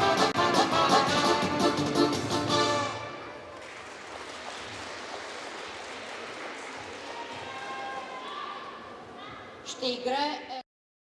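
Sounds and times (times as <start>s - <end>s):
audience applauding: 3.5s - 8.2s.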